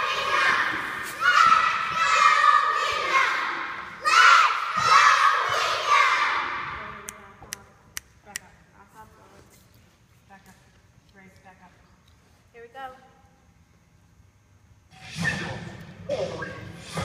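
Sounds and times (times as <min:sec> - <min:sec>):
girls shouting a cheer: 0:00.0 - 0:07.0.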